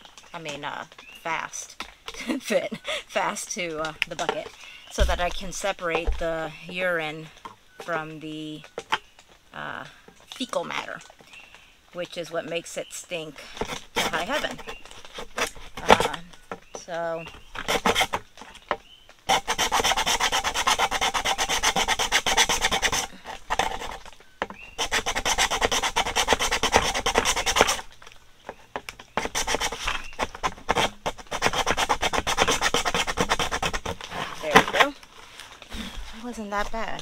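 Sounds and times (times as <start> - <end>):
hand saw cutting plastic bucket: 13.4 - 16.2, 17.3 - 18.2, 19.3 - 27.9, 29.1 - 35.0.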